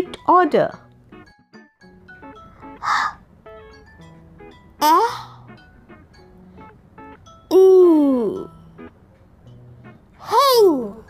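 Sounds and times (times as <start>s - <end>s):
soft background music: 0.0s - 11.0s
breathy exhale: 2.8s - 3.2s, 5.1s - 5.5s.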